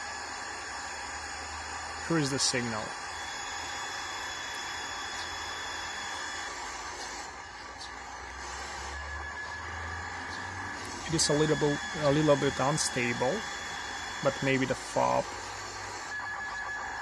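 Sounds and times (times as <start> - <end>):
radio static hiss: 0.0 - 17.0.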